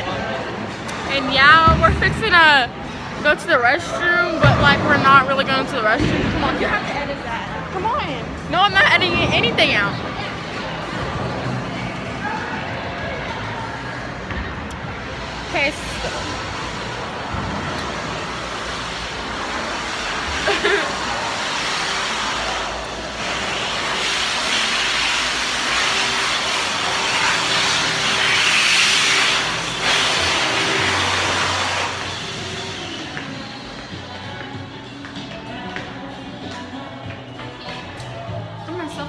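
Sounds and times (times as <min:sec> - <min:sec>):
electric hand dryer blowing: 0:17.8 - 0:34.2.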